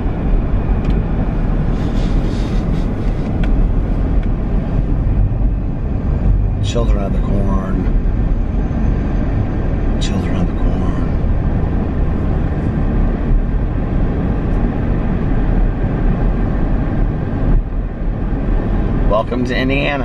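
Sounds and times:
car road and engine noise: 0:00.0 - 0:20.0.

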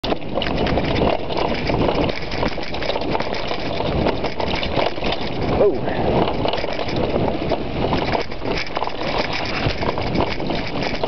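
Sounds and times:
bike rattling and knocking: 0:00.0 - 0:11.0
tyres on dirt: 0:00.0 - 0:11.0
wind on microphone: 0:00.0 - 0:11.0.

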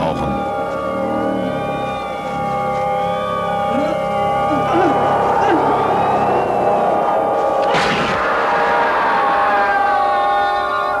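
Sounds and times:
horror film score held chord: 0:00.0 - 0:11.0.

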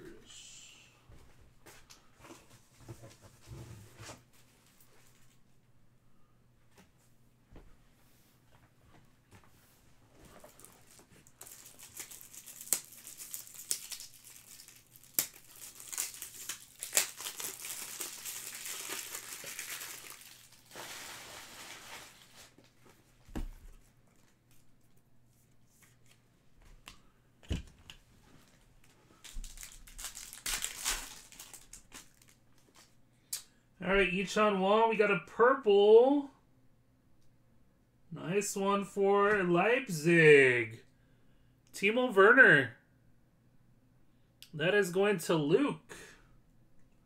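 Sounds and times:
packaging wrapper crinkling: 0:10.4 - 0:22.7, 0:28.4 - 0:32.9.

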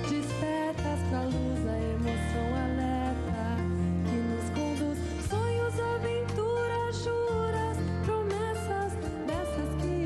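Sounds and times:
acoustic guitar: 0:00.0 - 0:10.0
bass guitar: 0:00.0 - 0:10.0
woman singing pop song: 0:00.0 - 0:10.0.

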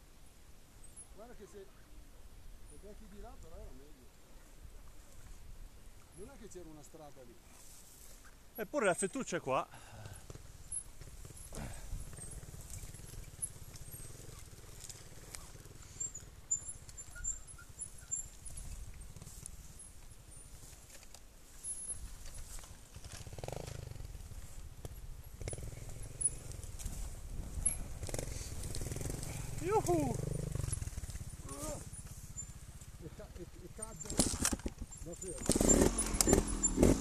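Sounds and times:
motorcycle engine chugging: 0:08.2 - 0:37.0
knocks over rough ground: 0:33.8 - 0:37.0.

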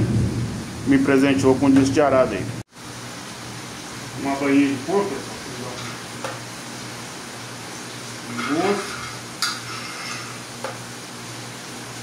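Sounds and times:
lard sizzling on a griddle: 0:00.1 - 0:12.0.

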